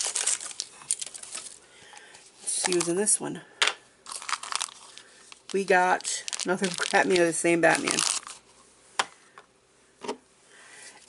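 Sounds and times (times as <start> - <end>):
plastic packaging crinkling: 0.0 - 1.6, 2.4 - 3.2, 4.0 - 8.5.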